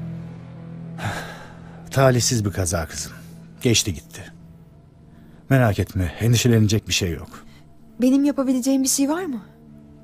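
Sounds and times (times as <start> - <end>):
low music drone: 0.0 - 10.0
man breathing: 1.0 - 1.9.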